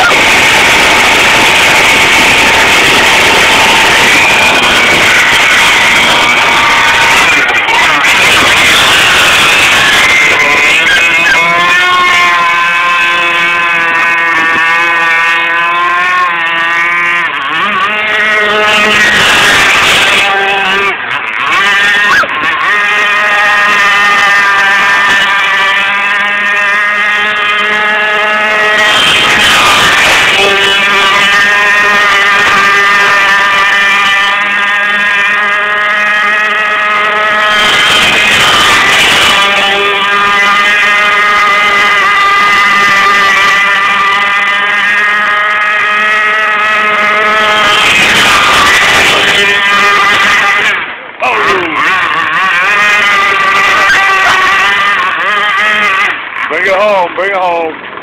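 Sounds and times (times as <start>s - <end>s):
rushing water noise: 0.0s - 58.0s
two-stroke boat engine buzzing: 0.0s - 58.0s.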